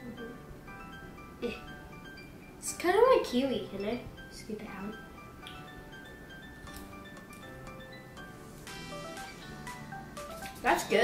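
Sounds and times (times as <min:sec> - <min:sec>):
quiet melodic background music: 0:00.0 - 0:11.0.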